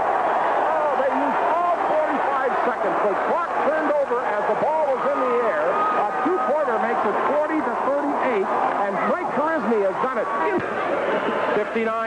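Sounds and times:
man announcing on radio: 0:00.7 - 0:10.6, 0:11.6 - 0:12.0.

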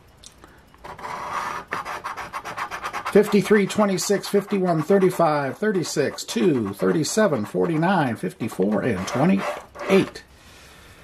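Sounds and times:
scratching lottery ticket: 0:00.8 - 0:10.2.

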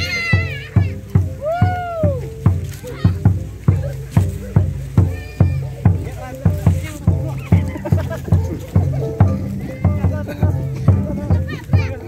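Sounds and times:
barrel drum beat: 0:00.0 - 0:12.0
person whooping: 0:01.4 - 0:02.3.

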